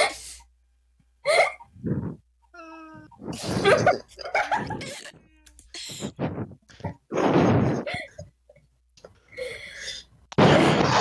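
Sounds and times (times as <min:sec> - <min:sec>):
person laughing and squealing: 0:01.3 - 0:05.2.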